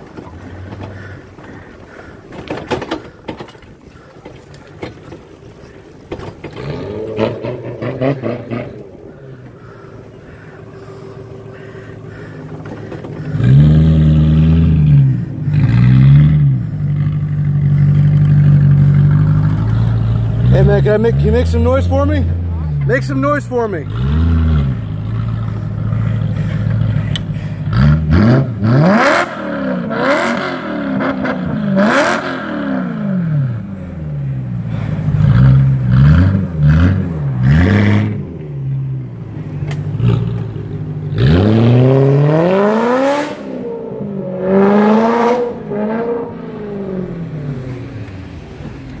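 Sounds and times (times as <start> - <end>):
car engine revving: 0.0 - 49.0.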